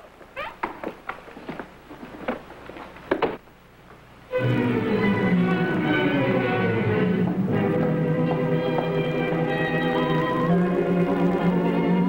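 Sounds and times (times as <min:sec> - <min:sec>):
footsteps on hard floor: 0:07.2 - 0:10.3.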